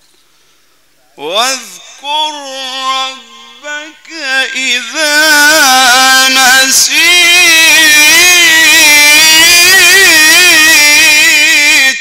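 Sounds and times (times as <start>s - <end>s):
man reciting in a long ornamented note: 1.2s - 12.0s.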